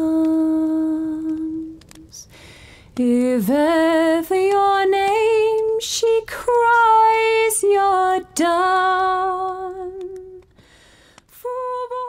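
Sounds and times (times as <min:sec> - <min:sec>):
woman singing unaccompanied: 0:00.0 - 0:02.3, 0:03.0 - 0:10.5, 0:11.3 - 0:12.0.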